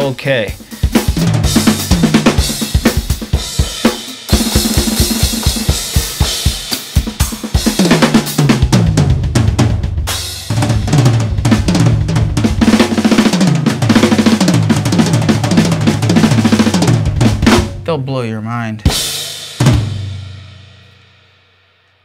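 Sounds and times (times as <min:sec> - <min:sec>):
fast drum kit playing: 0:00.0 - 0:20.9.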